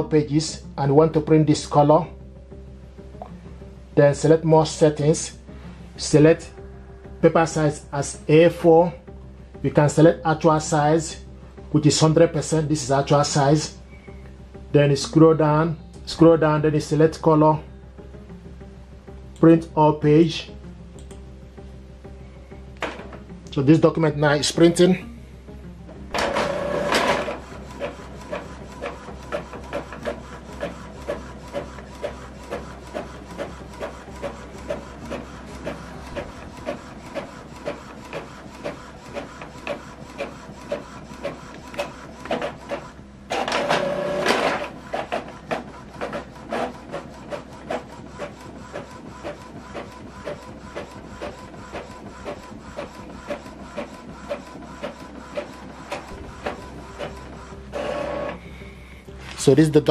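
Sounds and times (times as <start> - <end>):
printer carriage clicking: 26.2 - 58.4
printer motor whir: 26.2 - 59.0.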